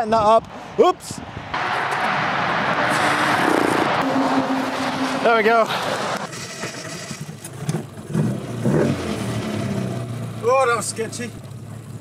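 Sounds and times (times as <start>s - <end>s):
road traffic rushing by: 0.1s - 12.0s.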